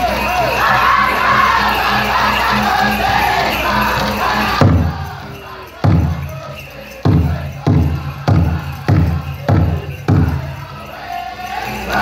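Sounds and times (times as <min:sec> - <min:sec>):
faint singing: 0:00.0 - 0:12.0
heavy drum beats: 0:04.5 - 0:10.8.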